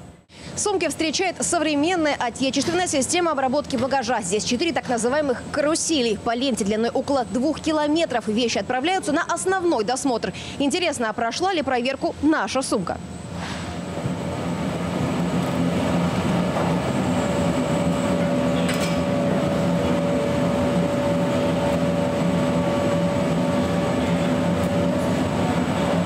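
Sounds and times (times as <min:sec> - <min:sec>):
conveyor belt rumble: 0:00.0 - 0:26.0.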